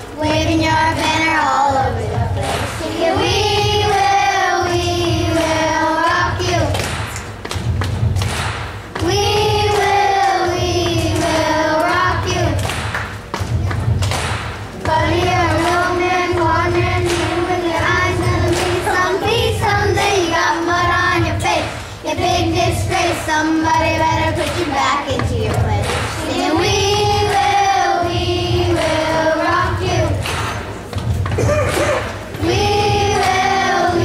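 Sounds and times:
low thumping beat: 0.1s - 34.0s.

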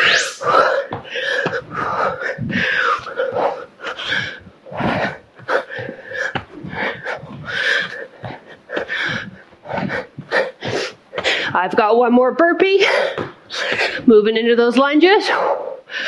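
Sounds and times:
woman breathing hard: 0.0s - 11.6s, 12.8s - 14.1s, 15.3s - 16.0s.

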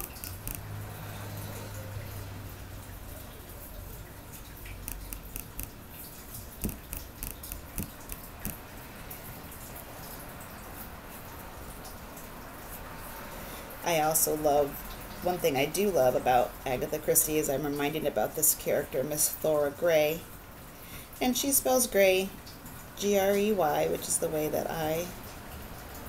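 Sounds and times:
paintbrush dabbing wet glue: 0.0s - 0.6s, 4.8s - 5.8s, 6.6s - 8.6s.

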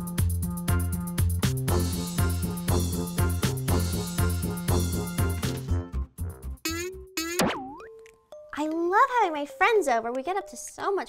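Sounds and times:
cartoon boing sound effect: 6.7s - 8.0s.

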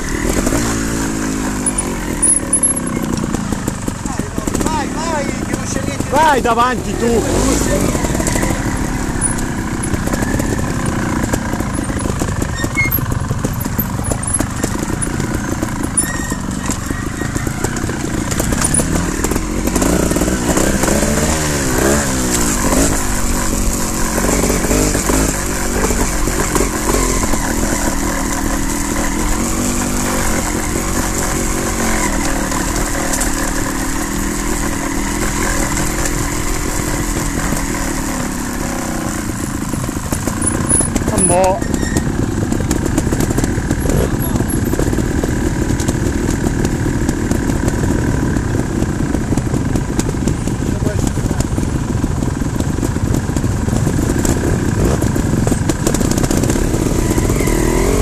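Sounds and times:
motorcycle engines revving: 0.0s - 58.0s.

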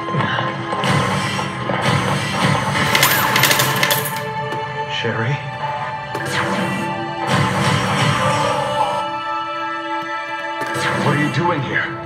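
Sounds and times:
coins clinking: 2.8s - 4.3s
slot machine music: 2.8s - 4.3s.

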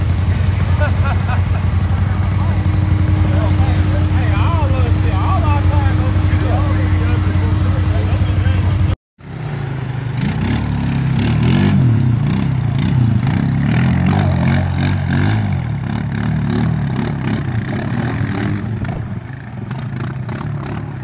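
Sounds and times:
atv engine revving through water: 0.0s - 19.1s, 19.9s - 21.0s
atv engine running: 0.0s - 21.0s.

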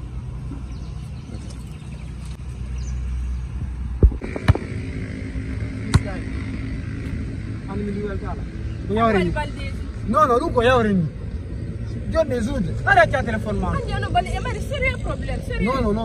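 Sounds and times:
basketball bouncing on concrete: 4.0s - 4.8s, 5.8s - 6.2s.

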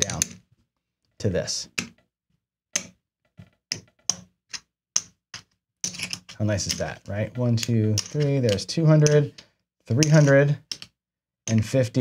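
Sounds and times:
casino chips clicking: 3.7s - 11.8s.

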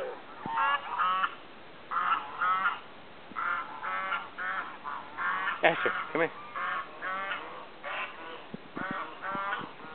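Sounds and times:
geese honking: 0.0s - 9.9s.

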